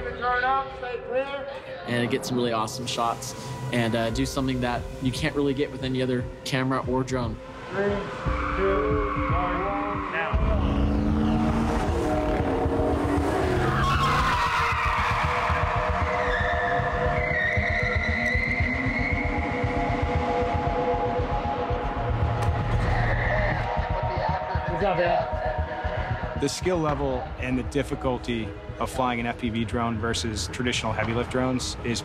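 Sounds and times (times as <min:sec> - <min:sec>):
car engines running: 0:07.6 - 0:18.3
tyres squealing and skidding: 0:07.6 - 0:19.3.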